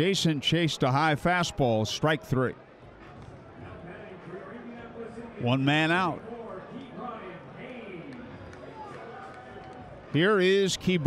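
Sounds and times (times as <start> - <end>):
murmur of spectators chatter: 0.0 - 11.0.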